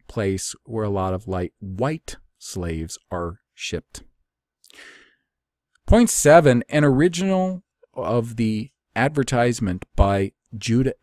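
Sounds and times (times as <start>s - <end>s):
man talking: 0.0s - 4.1s, 5.9s - 11.0s.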